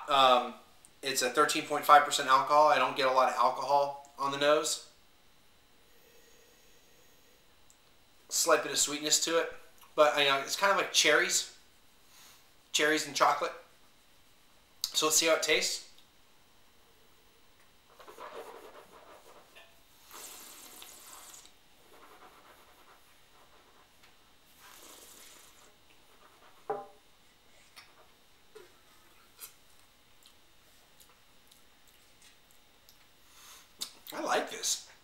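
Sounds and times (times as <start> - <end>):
person slurping wine: 20.1 - 21.6, 24.6 - 25.7.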